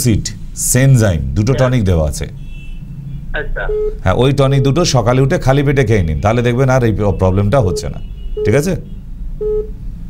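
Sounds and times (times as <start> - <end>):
man speaking close to microphone: 0.0 - 2.4, 3.6 - 8.9
voice through a telephone: 3.4 - 3.8.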